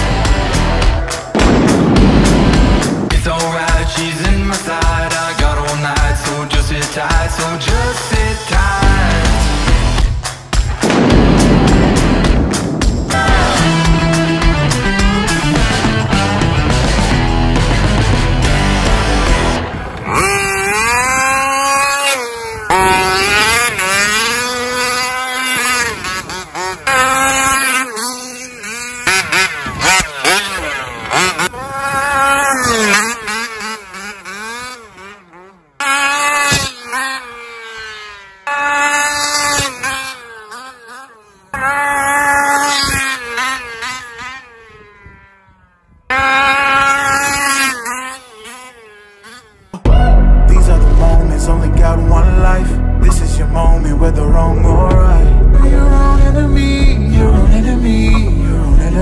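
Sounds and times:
toy truck motor revving: 19.8 - 49.8.

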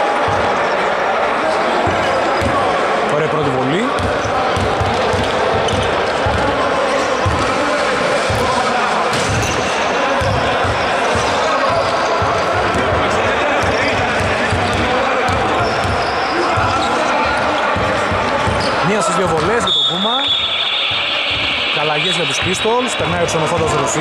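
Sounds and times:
murmur of voices: 0.0 - 24.0
shoe squeaks: 18.6 - 22.9.

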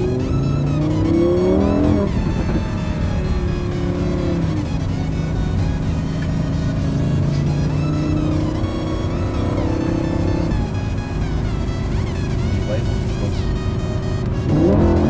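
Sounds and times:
car engine cruising: 0.0 - 15.0
music: 0.0 - 15.0.

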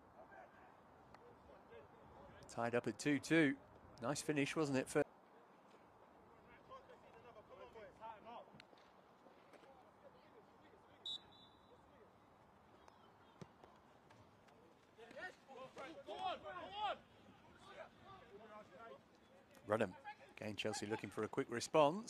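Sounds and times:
referee's whistle: 11.0 - 11.8
players shouting: 15.1 - 18.4.

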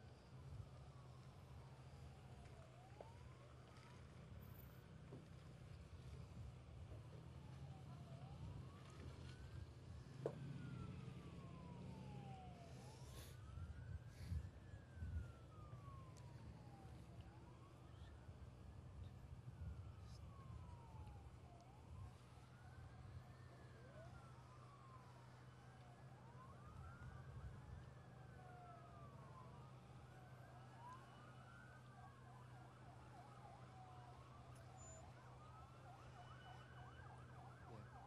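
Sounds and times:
faint sirens wailing: 0.0 - 38.0.

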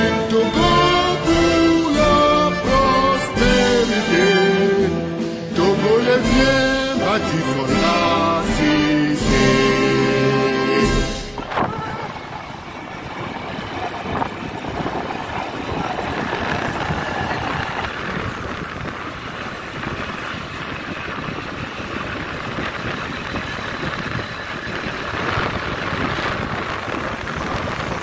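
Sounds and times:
road noise rushing: 0.0 - 28.0
motorcycle engine running: 10.9 - 28.0.

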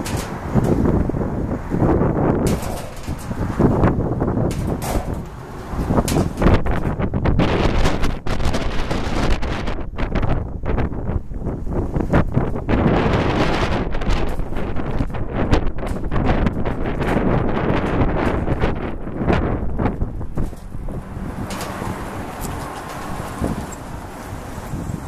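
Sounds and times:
wind buffeting microphone: 0.0 - 25.0
faint passing car: 17.6 - 25.0.

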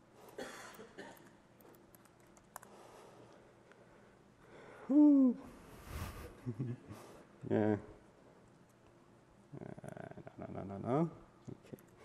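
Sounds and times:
faint keyboard clicks: 1.1 - 2.8
person laughing: 6.2 - 7.8.

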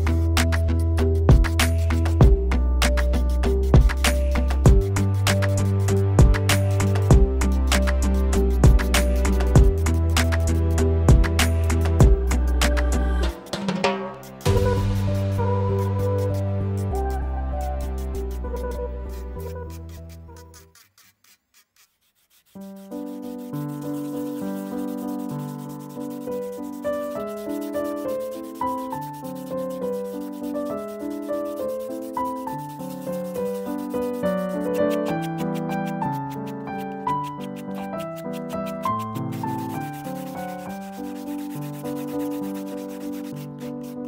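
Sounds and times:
keyboard music: 0.0 - 19.9
piano background music: 0.0 - 20.6, 22.5 - 44.0
sanding strokes hiss: 14.2 - 44.0.

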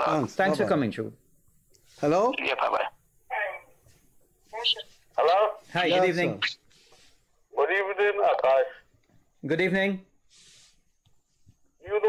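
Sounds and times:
man speaking: 0.0 - 1.2, 1.9 - 3.6, 4.6 - 6.6, 7.5 - 10.1
soft hiss: 0.1 - 12.0.

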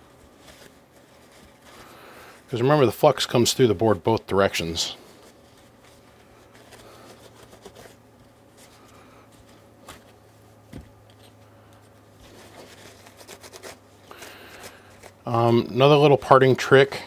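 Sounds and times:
paper towel rubbing circuit board: 12.2 - 17.0.

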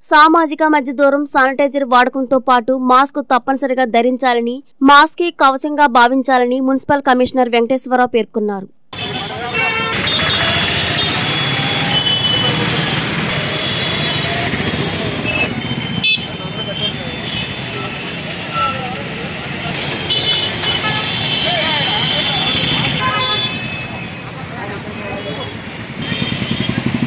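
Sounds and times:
vehicle horns tooting: 8.9 - 27.0
motorbikes passing: 9.0 - 27.0.

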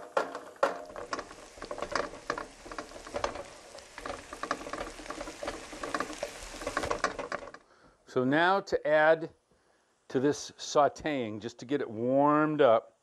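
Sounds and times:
vegetables sizzling in a pan: 0.0 - 7.8
wooden spoon stirring in pan: 0.0 - 8.0.

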